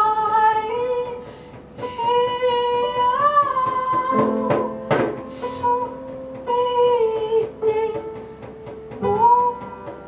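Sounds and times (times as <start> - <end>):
piano: 0.0 - 10.0
woman singing: 0.0 - 10.0.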